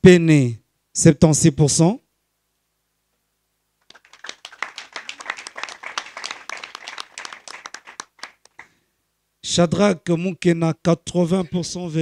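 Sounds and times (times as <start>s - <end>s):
crowd clapping: 3.8s - 8.8s.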